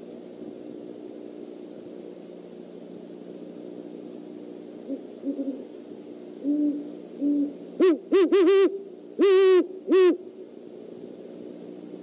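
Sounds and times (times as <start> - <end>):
owl hooting: 4.8 - 5.7, 6.4 - 10.3.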